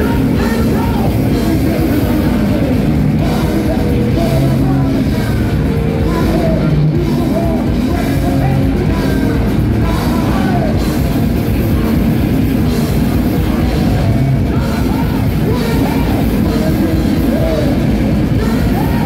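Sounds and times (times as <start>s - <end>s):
singer shouting vocals: 0.0s - 11.2s, 12.8s - 19.0s
metal band playing live: 0.0s - 19.0s.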